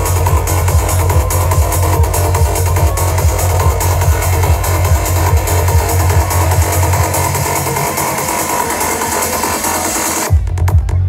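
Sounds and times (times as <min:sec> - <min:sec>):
trance dance music: 0:00.0 - 0:11.0.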